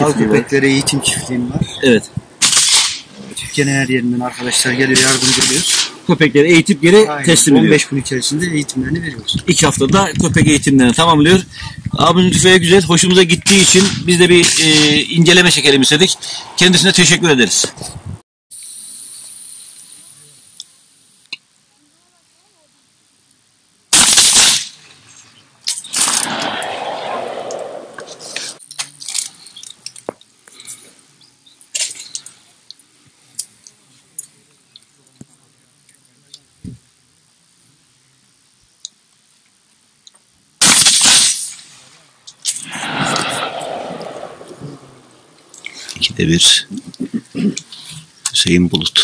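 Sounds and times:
rolling echo of shot: 0:02.4 - 0:03.1, 0:23.9 - 0:24.8, 0:25.9 - 0:28.6, 0:40.6 - 0:41.7, 0:42.6 - 0:45.4
shotgun shots: 0:02.4 - 0:03.1, 0:04.4 - 0:06.0, 0:23.9 - 0:24.8, 0:25.9 - 0:28.6, 0:40.6 - 0:41.7, 0:42.6 - 0:45.1.

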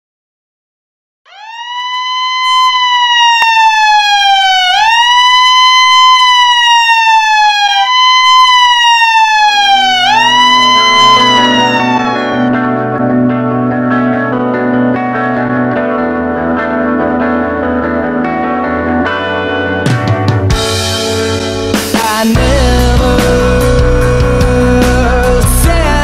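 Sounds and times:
siren wailing: 0:01.3 - 0:14.1
low held music notes: 0:09.7 - 0:14.9.

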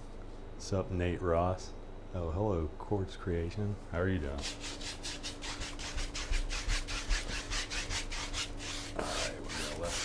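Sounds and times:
brush scrubbing on canvas: 0:04.4 - 0:10.0.

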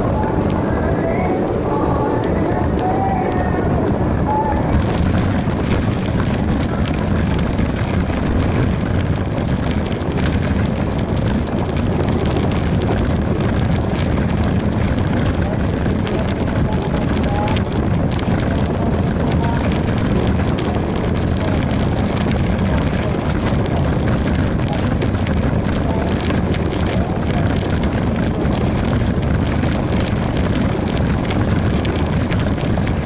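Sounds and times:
tyre and road rolling noise: 0:00.0 - 0:33.0
wind rushing over camera: 0:00.0 - 0:33.0.

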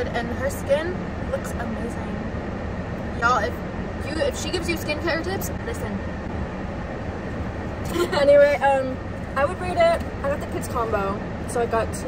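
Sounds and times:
car interior rumble and hiss: 0:00.0 - 0:12.0.

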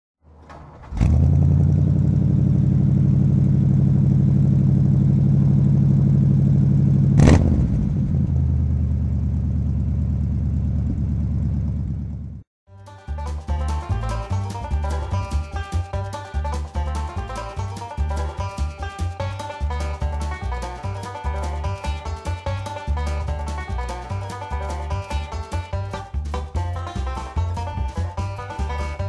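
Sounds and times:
car engine starting and idling: 0:00.3 - 0:12.4
engine throttle blip: 0:00.9 - 0:12.4
banjo music: 0:12.7 - 0:29.0.

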